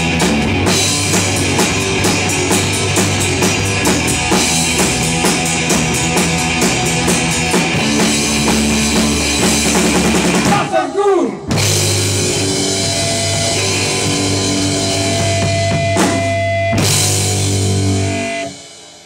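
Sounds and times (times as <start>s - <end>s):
rock band playing: 0.0s - 19.0s.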